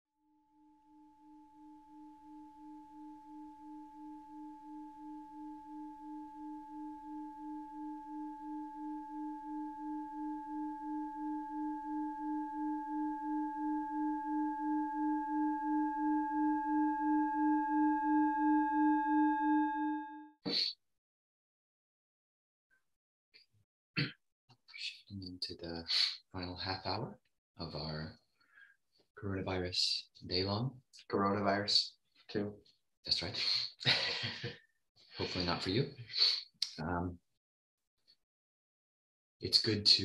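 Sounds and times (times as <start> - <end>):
singing bowl ringing: 0.3 - 20.3.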